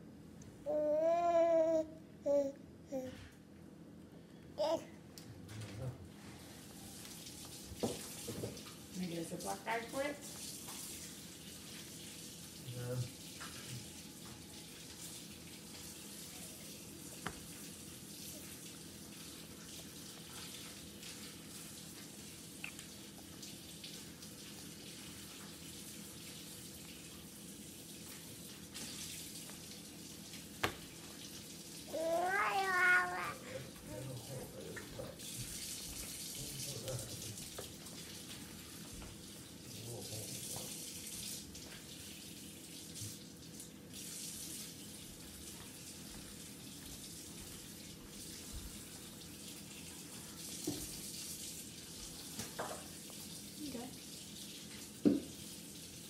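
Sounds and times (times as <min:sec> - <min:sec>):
baby babbling: 0:00.6 - 0:03.2, 0:04.6 - 0:04.9, 0:31.9 - 0:34.3
baby squealing: 0:31.9 - 0:33.5.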